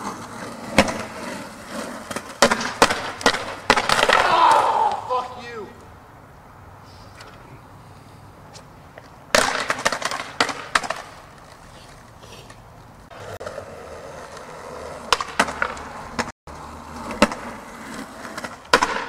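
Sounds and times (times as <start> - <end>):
skateboard clacking on ground: 0.0 - 5.9, 8.5 - 16.3, 16.9 - 19.0
skateboard wheels rolling on concrete: 0.0 - 19.0.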